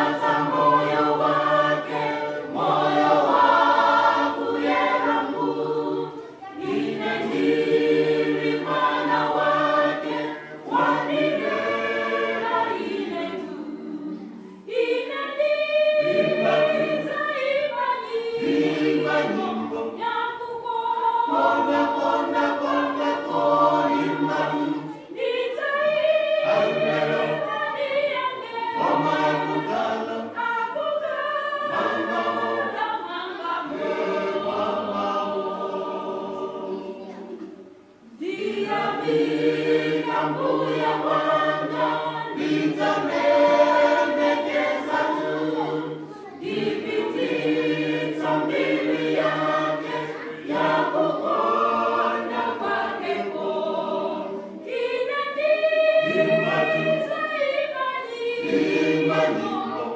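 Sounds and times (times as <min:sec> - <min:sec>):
a cappella hymn singing: 0:00.0 - 0:59.9.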